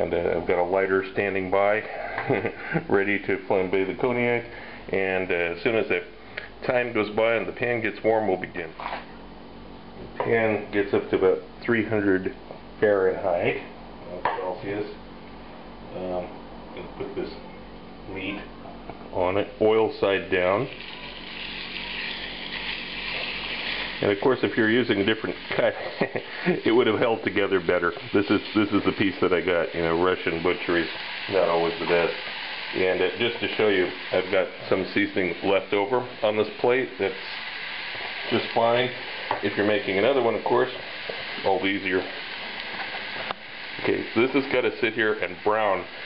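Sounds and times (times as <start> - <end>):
steak sizzling in a frying pan: 20.7 - 46.0.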